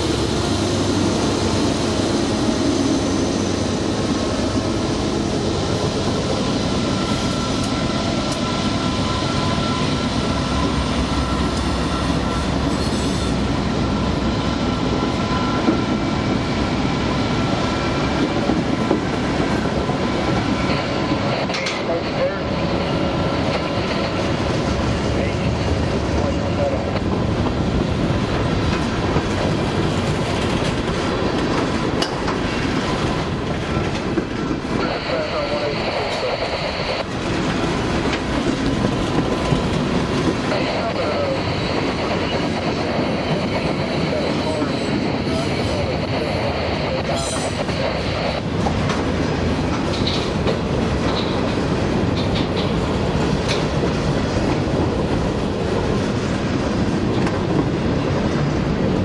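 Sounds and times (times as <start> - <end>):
freight train wheels rumbling: 0.0 - 59.0.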